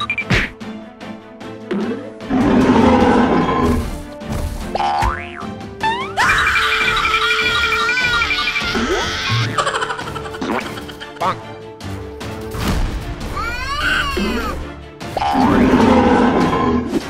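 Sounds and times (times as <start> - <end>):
cartoon background music: 0.0 - 17.0.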